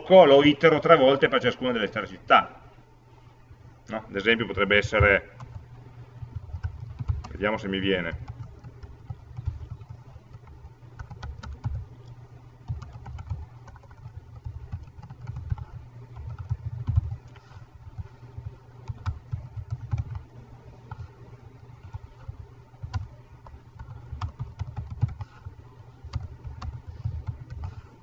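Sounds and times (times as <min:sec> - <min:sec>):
steady low hum: 0:00.0 - 0:28.0
computer keyboard typing: 0:04.5 - 0:28.0.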